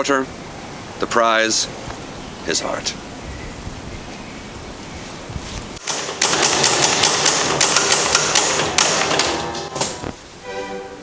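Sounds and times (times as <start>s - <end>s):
background hiss: 0.0s - 5.9s, 8.5s - 11.0s
rapid clattering clicks and knocks: 5.8s - 10.0s.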